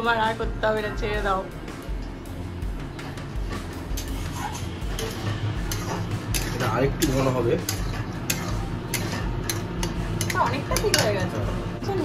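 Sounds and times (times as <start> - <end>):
steady low hum: 0.0 - 12.0
metal spatula scraping a pan: 3.0 - 11.4.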